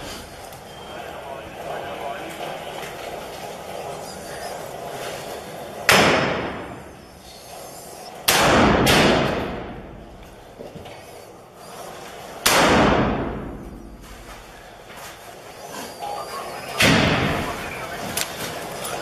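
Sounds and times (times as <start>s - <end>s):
rifle shots with echo: 5.9s - 6.8s, 8.3s - 9.8s, 12.4s - 13.5s.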